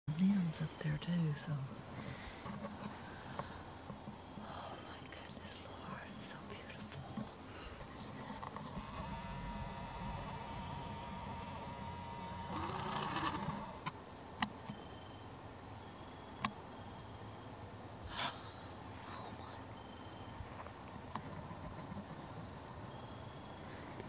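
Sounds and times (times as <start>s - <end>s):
camera lens motor whirring: 8.6s - 13.9s.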